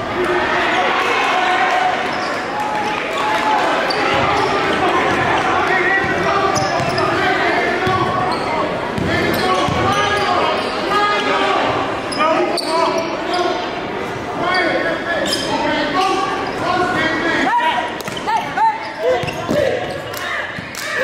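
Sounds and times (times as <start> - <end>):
many voices talking: 0.0 - 21.0.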